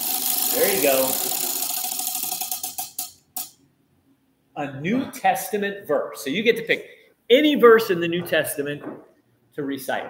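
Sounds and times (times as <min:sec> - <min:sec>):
prize wheel clicker ticking: 0:00.0 - 0:03.6.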